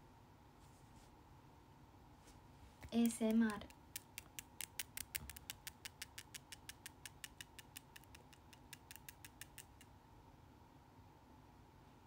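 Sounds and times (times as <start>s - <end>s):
rapid sharp clicks: 2.8s - 9.9s.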